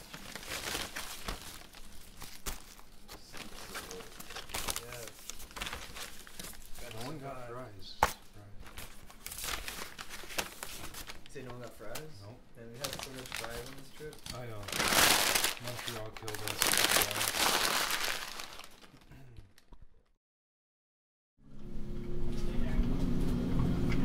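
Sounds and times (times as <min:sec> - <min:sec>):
paper bag crinkling: 0:00.0 - 0:07.4, 0:08.6 - 0:19.7
man talking: 0:06.8 - 0:08.6, 0:11.3 - 0:14.8, 0:15.6 - 0:17.4.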